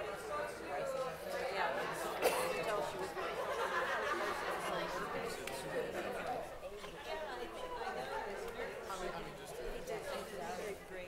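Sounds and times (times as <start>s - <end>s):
audience chatter: 0.0s - 11.0s.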